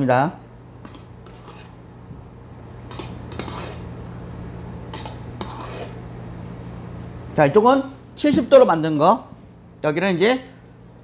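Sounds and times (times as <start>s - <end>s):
steady low hum: 0.0s - 11.0s
metal spoon scraping steel pitcher: 0.9s - 1.8s, 2.9s - 3.9s, 4.9s - 6.0s.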